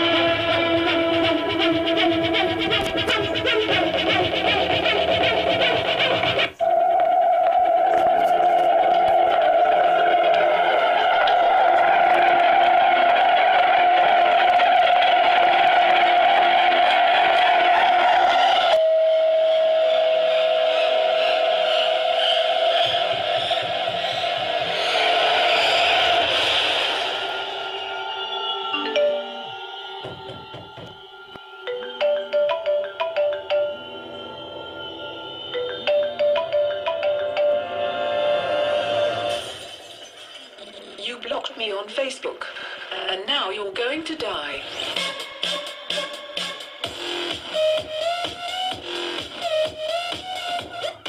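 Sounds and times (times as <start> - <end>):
droning tone from speaker: 0.0 - 12.4.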